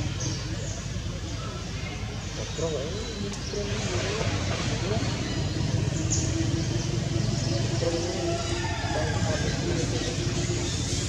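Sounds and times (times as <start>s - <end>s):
faint voices: 0.0s - 11.0s
low engine rumble: 0.0s - 11.0s
steady hum: 0.0s - 11.0s.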